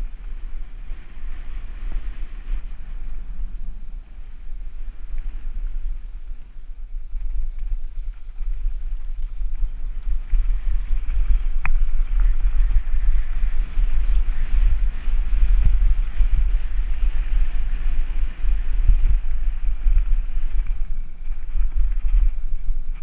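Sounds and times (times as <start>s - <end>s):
bike tyres on gravel: 0.0s - 23.0s
wind buffeting microphone: 0.0s - 23.0s.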